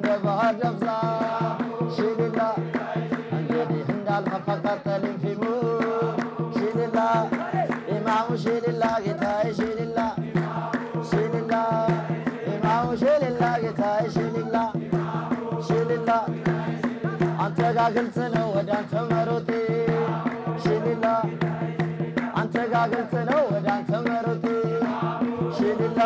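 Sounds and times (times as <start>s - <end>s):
hand-clapping: 0.0s - 14.7s, 15.3s - 26.0s
crowd chanting: 0.0s - 26.0s
man singing amplified: 0.0s - 26.0s.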